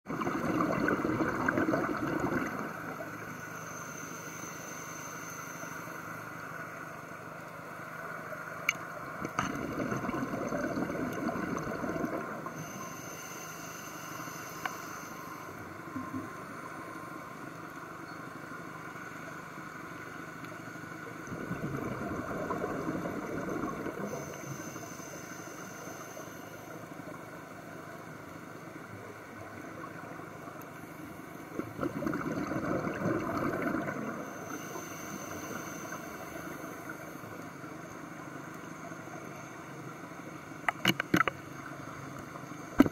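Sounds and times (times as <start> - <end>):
exhaled bubbles underwater: 0.1 - 3.2, 9.2 - 12.6, 21.3 - 24.3, 31.5 - 34.4
regulator inhale hiss: 2.6 - 7.2, 12.4 - 15.9, 23.9 - 27.2, 34.1 - 38.3.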